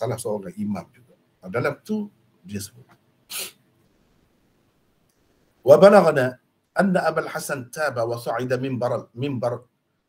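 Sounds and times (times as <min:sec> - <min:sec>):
sharp breath into microphone: 0:03.3 - 0:03.6.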